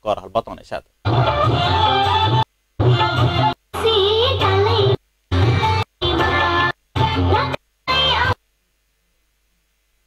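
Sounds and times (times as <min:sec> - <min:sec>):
song with singing voice: 0:01.1 - 0:08.5.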